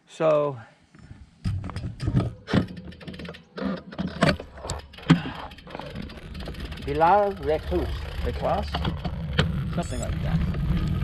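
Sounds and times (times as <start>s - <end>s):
bike clicks and knocks: 1.4s - 8.0s.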